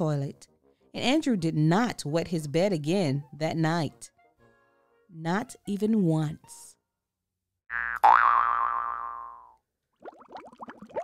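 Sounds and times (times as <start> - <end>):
cartoon boing sound effect: 7.7 - 9.6
bubbly blub sound effects: 10.0 - 11.0.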